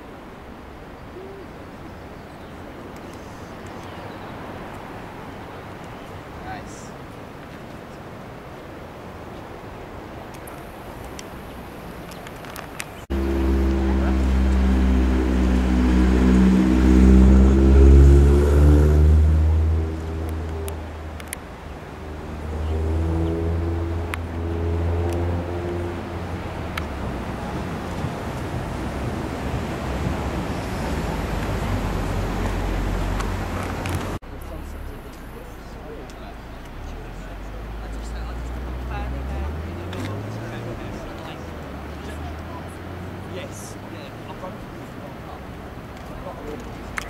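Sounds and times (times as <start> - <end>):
distant surf: 0.0 - 47.0
wind noise: 2.9 - 34.2.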